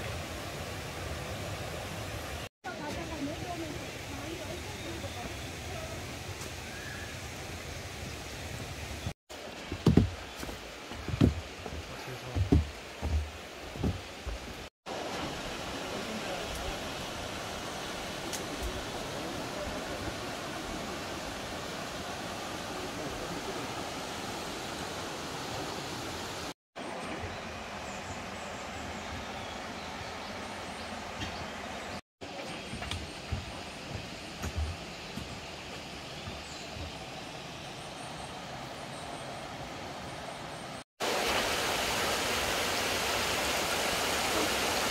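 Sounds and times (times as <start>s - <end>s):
water rushing over rocks: 8.6s - 27.7s, 41.0s - 44.9s.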